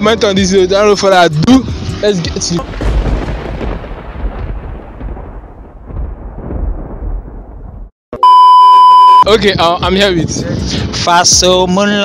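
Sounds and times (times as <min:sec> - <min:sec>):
deep thunder-like rumble: 0:02.6 - 0:07.9.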